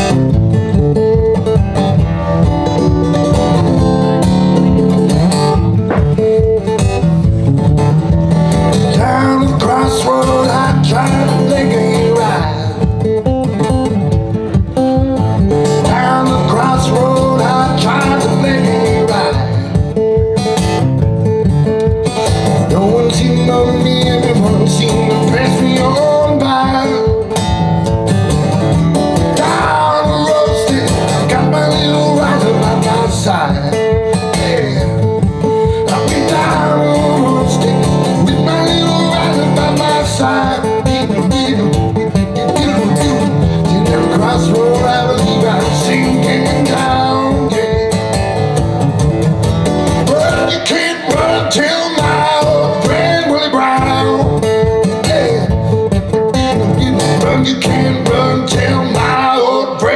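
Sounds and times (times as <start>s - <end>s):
acoustic guitar strumming: 0.0s - 59.9s
man singing blues: 3.1s - 20.5s, 22.0s - 27.9s, 28.5s - 48.6s, 49.9s - 59.9s.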